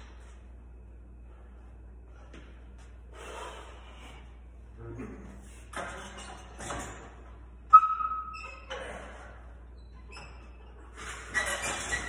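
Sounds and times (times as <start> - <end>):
man breathing forcefully: 3.1 - 4.6.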